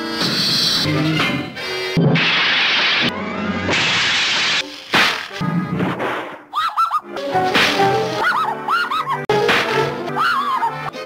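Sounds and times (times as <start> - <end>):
whip-like crack: 3.7 - 5.4, 7.5 - 8.2
cartoon orchestral music: 6.7 - 11.0.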